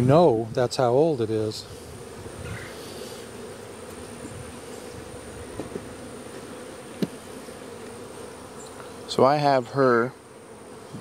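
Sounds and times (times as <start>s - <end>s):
bees buzzing: 0.0s - 11.0s.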